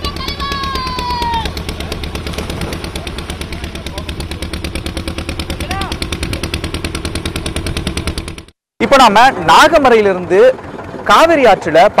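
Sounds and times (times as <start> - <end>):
small engine chugging: 0.0 - 12.0.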